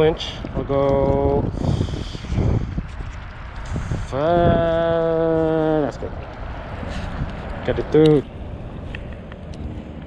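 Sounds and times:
wind hiss on microphone: 1.0s - 5.7s.

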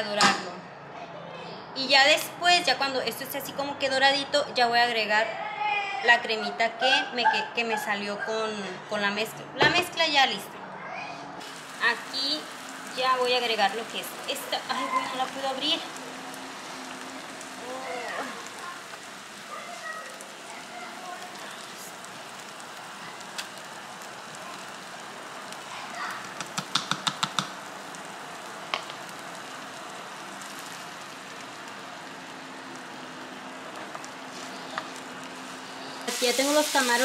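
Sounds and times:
corn sizzling in a skillet: 11.4s - 37.0s.

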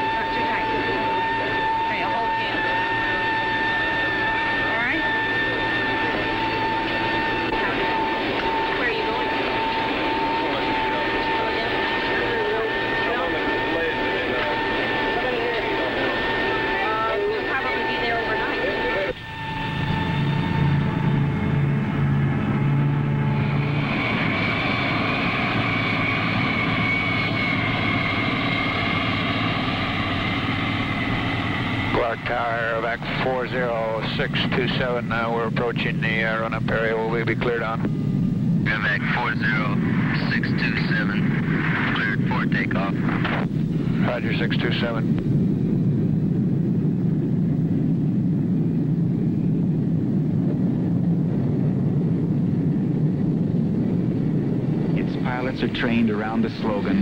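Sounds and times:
jet engine drone in cabin: 0.0s - 57.0s
turbofan engines running on ground: 0.0s - 57.0s.

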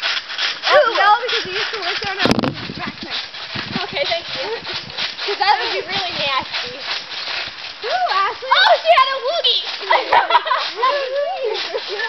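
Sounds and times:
girls' voices and laughter: 0.6s - 12.0s.

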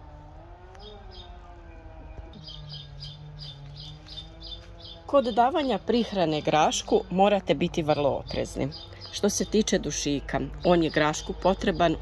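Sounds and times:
low wavering drone: 0.0s - 12.0s
small bird chirping: 0.8s - 1.4s, 2.2s - 12.0s.

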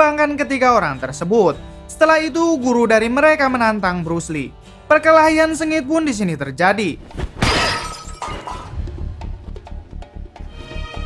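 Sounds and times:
shattering crash: 7.1s - 8.8s.

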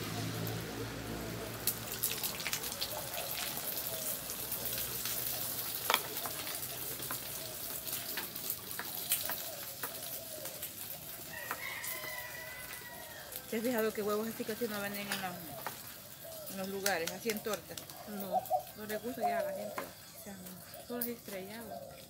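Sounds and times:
egg sizzling in oil: 0.0s - 20.2s
crackling pops: 1.6s - 11.6s, 15.0s - 19.1s
chickens clucking: 2.7s - 22.0s
rooster crowing: 11.2s - 13.5s.

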